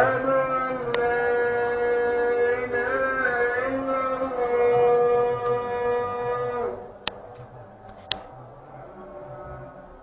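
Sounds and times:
person chanting a long note: 0:00.0 - 0:06.9.

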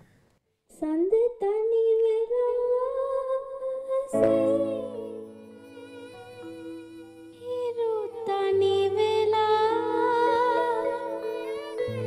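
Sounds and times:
girl singing with vibrato: 0:00.7 - 0:12.0.

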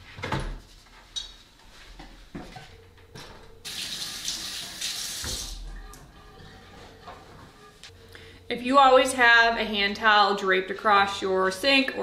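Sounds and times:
faucet running into sink: 0:03.7 - 0:05.6.

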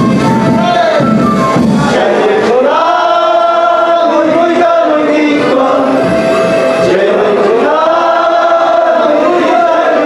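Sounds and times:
men singing together: 0:01.8 - 0:10.0.

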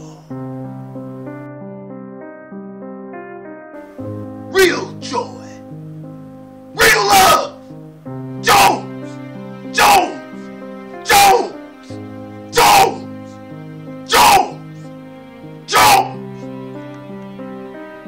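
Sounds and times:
keyboard music with held notes: 0:00.0 - 0:18.0
man shouting: 0:04.5 - 0:05.6, 0:06.8 - 0:07.6, 0:08.4 - 0:08.9, 0:09.7 - 0:10.3, 0:11.0 - 0:11.6, 0:12.5 - 0:13.1, 0:14.0 - 0:14.6, 0:15.7 - 0:16.2.

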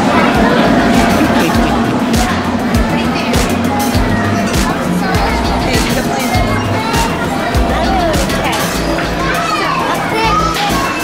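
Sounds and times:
background music with bass: 0:00.0 - 0:11.0
children's voices chattering: 0:00.0 - 0:11.0.

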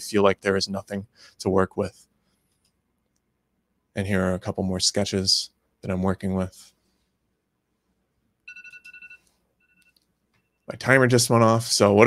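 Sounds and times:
electronic timer beeping: 0:08.5 - 0:10.7.

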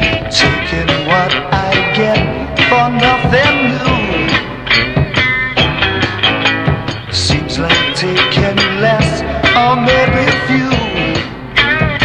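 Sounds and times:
garage rock band playing: 0:00.0 - 0:12.0.

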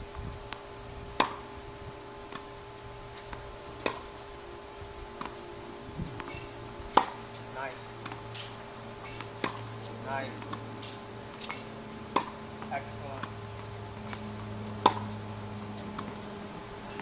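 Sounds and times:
tennis racket hitting ball: 0:01.2 - 0:01.6, 0:03.1 - 0:04.2, 0:06.0 - 0:17.0.

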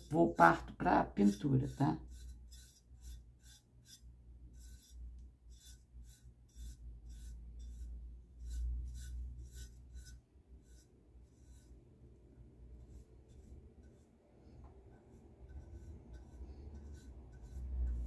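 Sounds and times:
paintbrush scratching metal tray: 0:00.0 - 0:12.0, 0:12.6 - 0:18.0.

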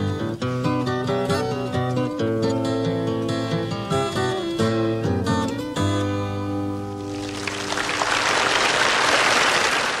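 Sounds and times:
acoustic guitars chord ringing: 0:00.0 - 0:08.7
audience applause: 0:07.1 - 0:10.0.

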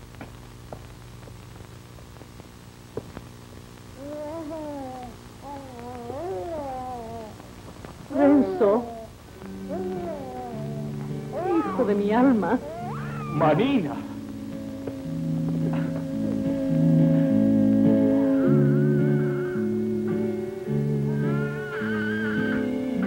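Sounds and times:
person crying and sobbing: 0:08.1 - 0:09.1, 0:09.7 - 0:13.6
soft background music: 0:08.1 - 0:23.0.

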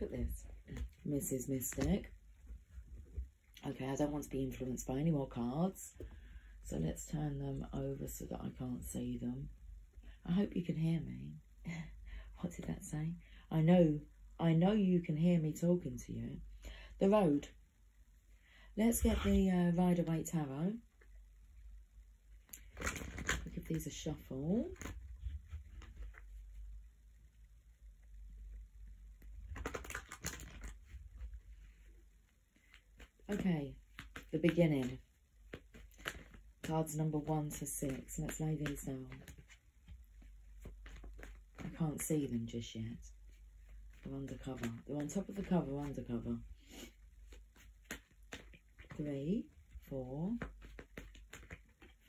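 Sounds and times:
cards being shuffled: 0:22.5 - 0:23.6, 0:29.2 - 0:31.3, 0:32.6 - 0:42.1, 0:43.3 - 0:49.0, 0:50.3 - 0:52.0.

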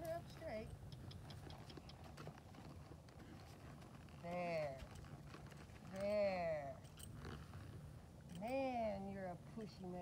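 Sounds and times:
hooves on soft dirt: 0:00.0 - 0:06.2.

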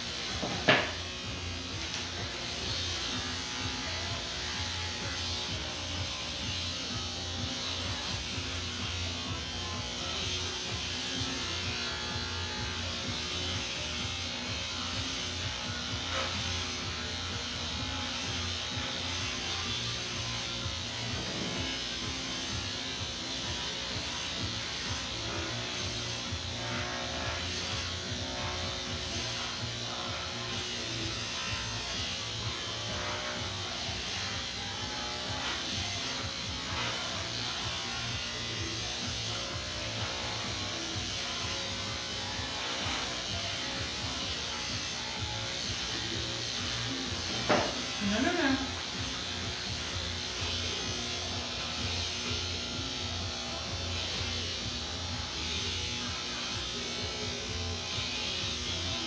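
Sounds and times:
electric pet clippers buzzing: 0:00.0 - 0:59.0
music playing: 0:00.0 - 0:59.0.

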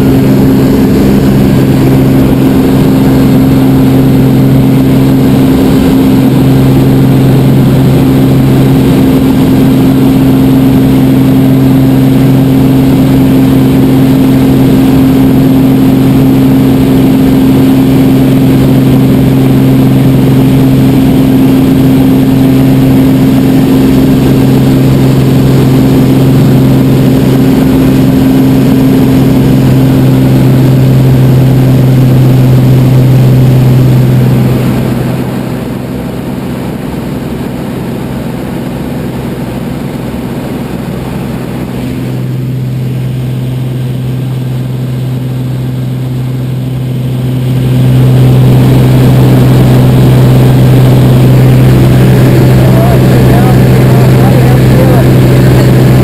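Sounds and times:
aircraft engine and propeller drone: 0:00.0 - 0:56.0.

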